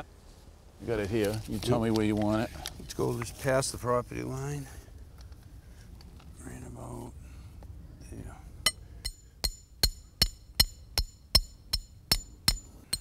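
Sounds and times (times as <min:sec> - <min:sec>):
hammer striking metal stake: 0:08.6 - 0:13.0.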